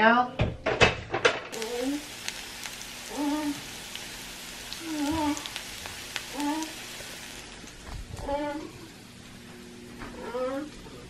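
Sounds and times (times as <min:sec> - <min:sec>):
potatoes and onions sizzling: 0:01.5 - 0:09.5.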